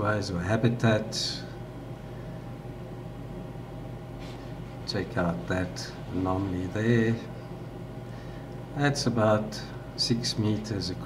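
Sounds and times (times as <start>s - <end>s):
low hum with faint hiss: 0.0s - 11.0s.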